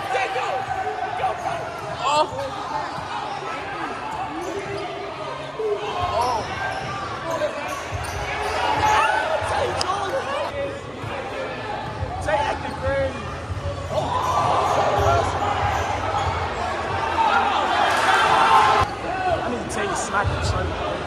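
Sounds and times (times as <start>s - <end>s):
crowd chatter and shouts: 0.0s - 21.0s.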